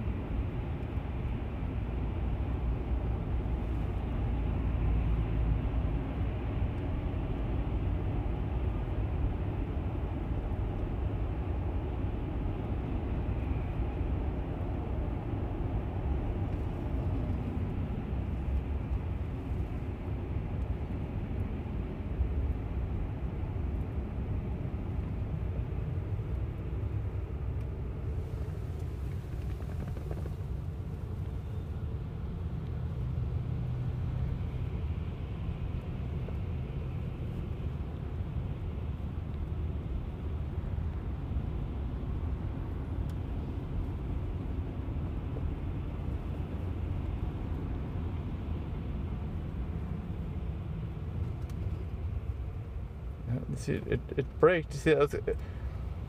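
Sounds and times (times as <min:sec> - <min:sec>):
road and tyre rumble: 0:00.0 - 0:56.0.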